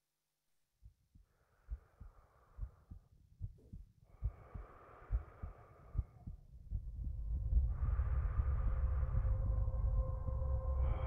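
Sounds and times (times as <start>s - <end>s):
slow heartbeat thumps: 0.8s - 10.4s
deep low drone: 4.3s - 11.0s.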